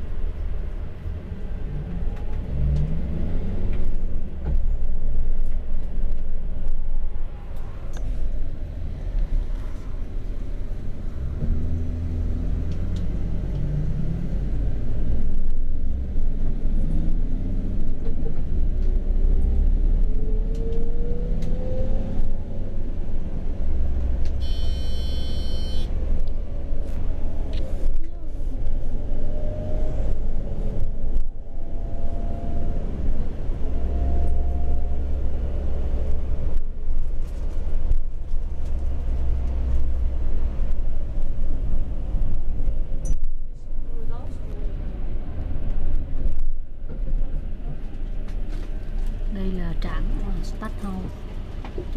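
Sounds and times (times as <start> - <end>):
bus engine low rumble: 0.0 - 51.9
brief high tone: 24.4 - 25.9.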